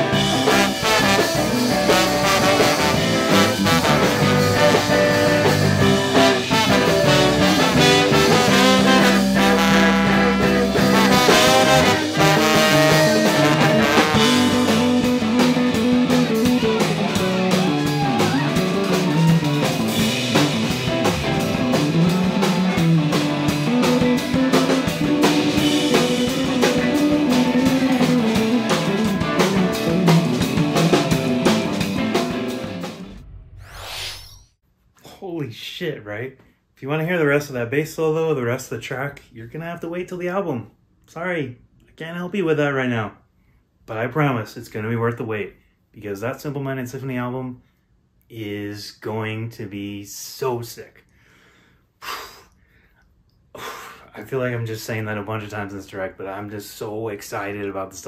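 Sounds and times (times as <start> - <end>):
trombone: 0.0 - 17.7
trumpet: 0.0 - 32.6
electric guitars: 0.0 - 33.2
bass guitar: 0.0 - 33.6
drum kit: 0.0 - 33.6.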